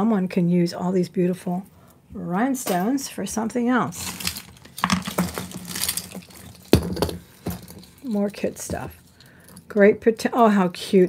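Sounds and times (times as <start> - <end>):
plastic bag rustling: 3.9 - 9.2
jewelry clinking and rattling: 3.9 - 9.8.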